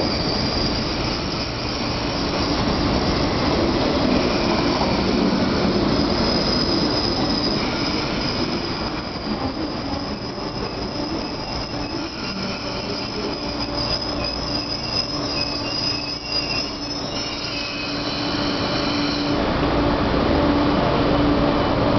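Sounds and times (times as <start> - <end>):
train wheels squealing: 0.0 - 19.4
low train hum: 0.0 - 21.9.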